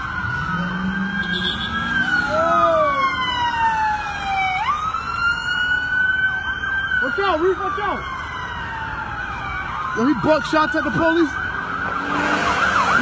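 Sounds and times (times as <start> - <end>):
police sirens wailing: 0.0 - 13.0.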